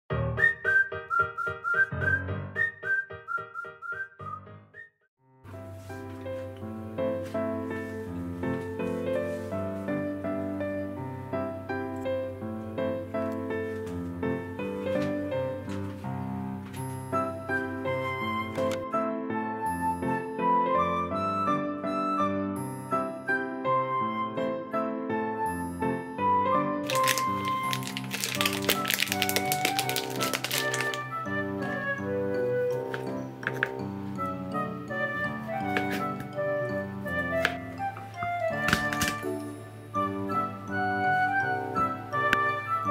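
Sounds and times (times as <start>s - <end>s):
whistled melody: 0.1s - 5.1s, 16.9s - 42.9s
background music: 5.5s - 42.9s
bouncy musical accompaniment: 26.2s - 42.9s
plastic food package crinkling: 26.8s - 31.2s.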